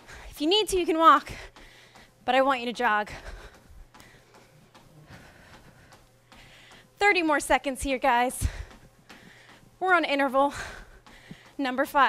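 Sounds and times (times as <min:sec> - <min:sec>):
soft footfalls on treadmill belt: 0:00.0 - 0:12.0
person breathing: 0:03.1 - 0:07.0, 0:08.4 - 0:09.8, 0:10.5 - 0:11.6.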